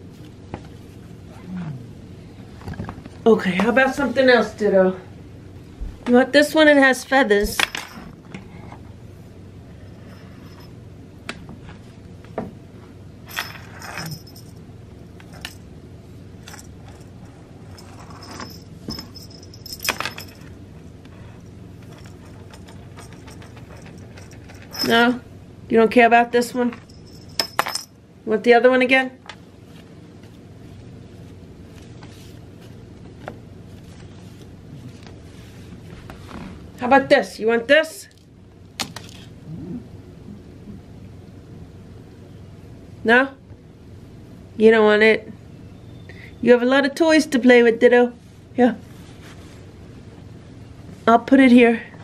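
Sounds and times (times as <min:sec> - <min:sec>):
cat growling: 0:01.3 - 0:02.1, 0:39.4 - 0:40.8
cat toy jingling and rattling: 0:13.3 - 0:14.6, 0:16.4 - 0:20.5, 0:21.8 - 0:25.1, 0:26.8 - 0:27.9.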